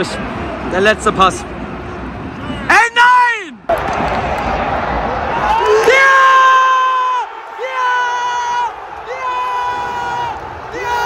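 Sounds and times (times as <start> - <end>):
stadium crowd cheering: 1.8 - 11.0.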